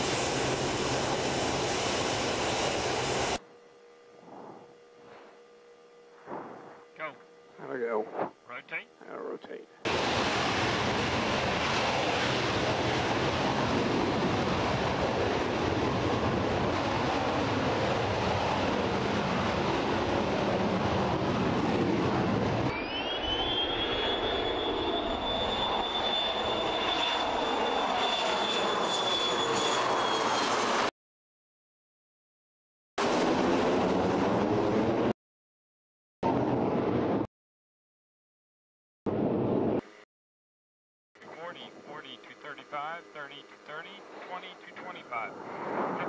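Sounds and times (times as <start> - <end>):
jet roar: 0.0 - 3.4, 6.2 - 7.2, 9.9 - 30.9, 33.0 - 35.1, 41.2 - 46.0
high turbine whine: 0.0 - 30.9, 41.2 - 46.0.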